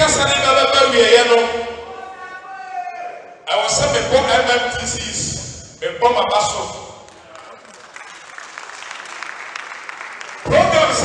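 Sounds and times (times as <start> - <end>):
audience applauding: 7.0 - 11.0.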